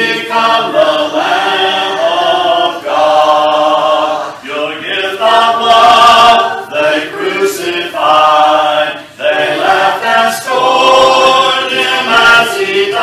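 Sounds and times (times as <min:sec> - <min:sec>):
congregation singing a hymn: 0:00.0 - 0:13.0.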